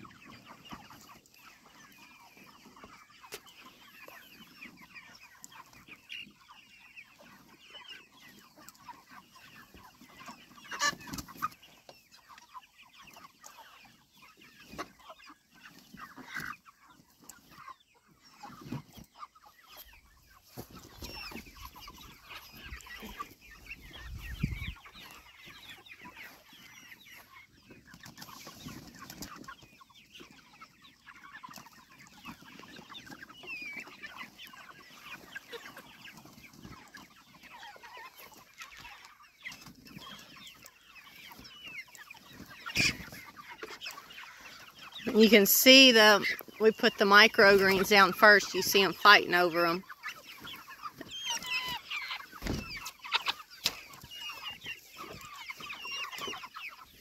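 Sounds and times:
chickens clucking: 0.0s - 57.0s.

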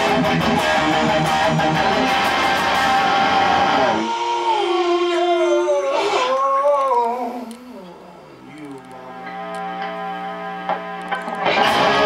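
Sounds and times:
heavy distorted electric guitar: 0.0s - 6.4s, 8.6s - 12.0s.

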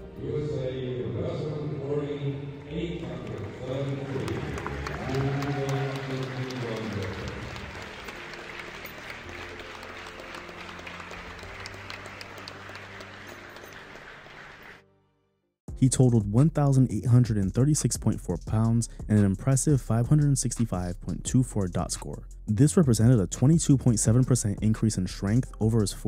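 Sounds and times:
audience applauding: 2.7s - 14.8s.

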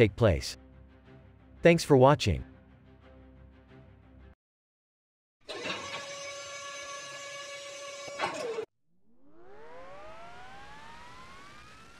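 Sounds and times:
turbofan spooling up: 5.9s - 11.9s
jet engine whine: 9.2s - 11.9s.

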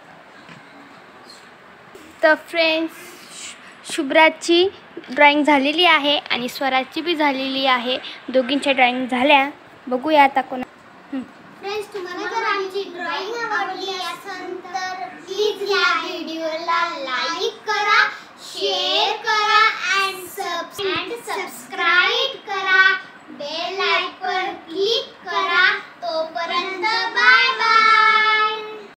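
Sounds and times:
girls singing in unison: 25.3s - 29.0s.

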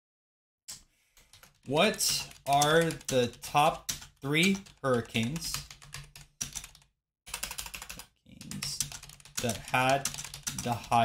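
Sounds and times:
typing on computer keyboard: 1.2s - 11.0s.

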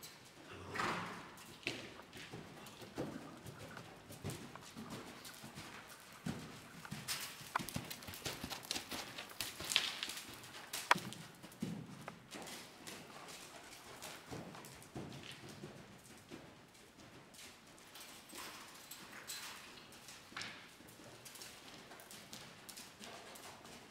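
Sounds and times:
horse hoofbeats on sand: 1.0s - 17.9s
sharp clicks: 10.7s - 11.1s.

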